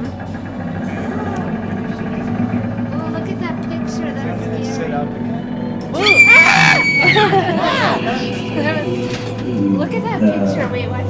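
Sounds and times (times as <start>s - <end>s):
faint voices: 0.0s - 11.0s
low drone of held tones: 0.0s - 11.0s.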